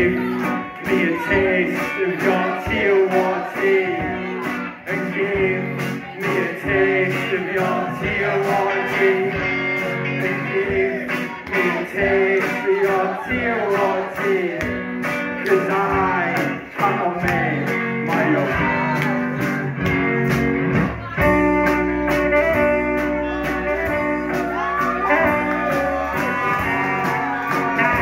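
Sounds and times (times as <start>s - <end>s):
bass guitar: 0.0s - 28.0s
drums: 0.0s - 28.0s
electric guitars: 0.0s - 28.0s
saxophone: 21.2s - 28.0s.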